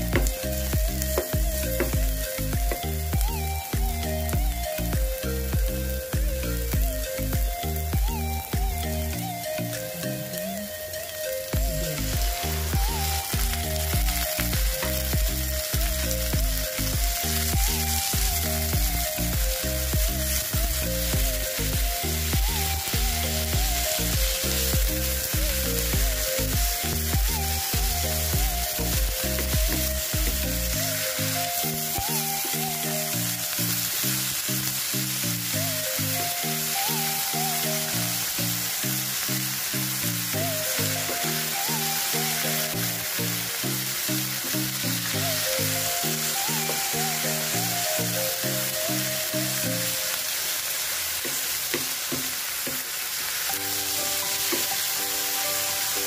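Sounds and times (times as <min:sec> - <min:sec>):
background music with bass: 0:00.0 - 0:50.2
meat sizzling in a pan: 0:00.0 - 0:56.0.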